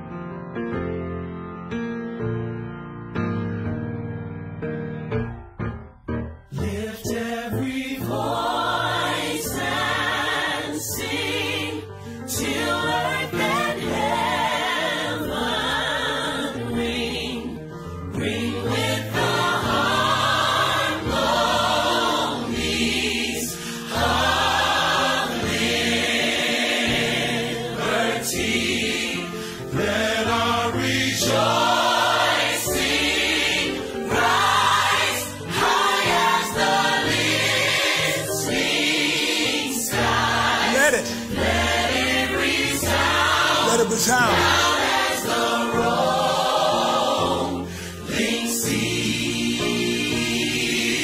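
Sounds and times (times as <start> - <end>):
gospel choir singing: 6.5 - 51.0.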